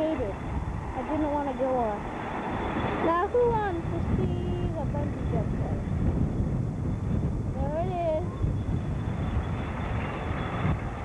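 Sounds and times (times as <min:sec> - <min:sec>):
steady low rumble: 0:00.0 - 0:11.0
people's voices: 0:03.0 - 0:05.8.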